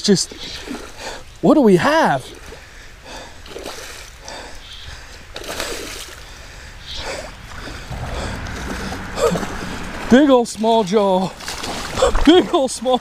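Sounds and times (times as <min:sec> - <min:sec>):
water splashing: 0:02.1 - 0:13.0.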